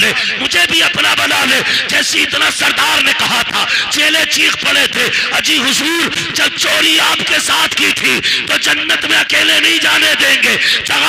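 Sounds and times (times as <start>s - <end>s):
man talking over pa system: 0.0s - 11.0s.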